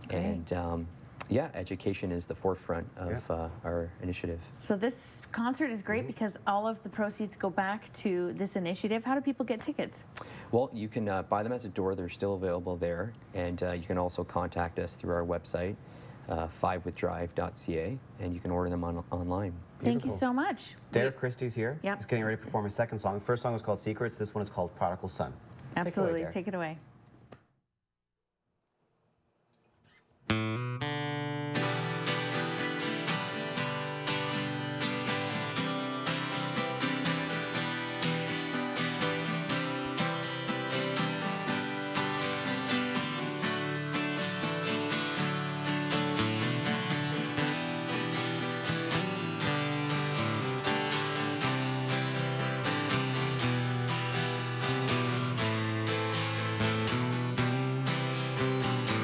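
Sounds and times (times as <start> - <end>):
acoustic guitars strumming: 29.9 - 59.0.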